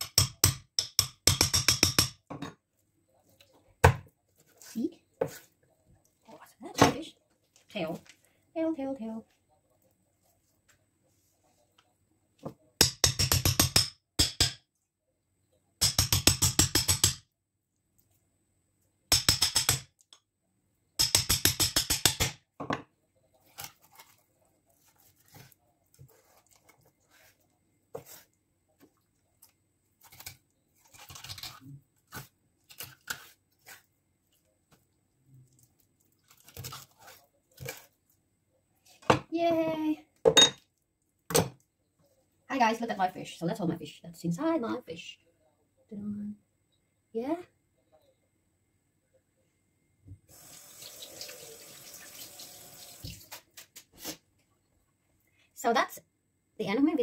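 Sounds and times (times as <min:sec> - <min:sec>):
knife crunching through fish: 0:36.2 - 0:37.9.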